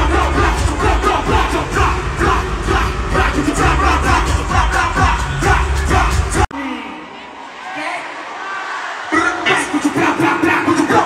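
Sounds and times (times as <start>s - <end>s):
loud live music with heavy bass: 0.0s - 6.5s
crowd shouting and singing along: 0.0s - 11.0s.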